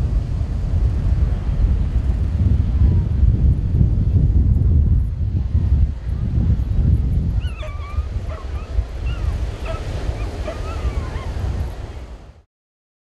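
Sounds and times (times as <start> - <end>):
wind rumble on microphone: 0.0 - 12.5
dogs whining and yipping: 7.4 - 11.7.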